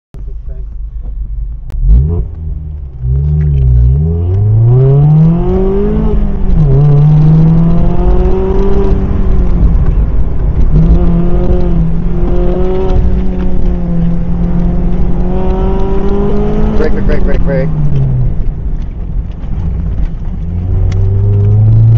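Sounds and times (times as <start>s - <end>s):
car engine accelerating: 0.2s - 21.9s.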